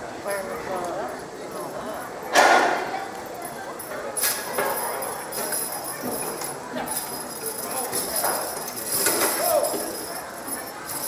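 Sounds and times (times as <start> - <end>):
crowd voices: 0.0 - 11.0
harness chains jingling: 3.3 - 11.0.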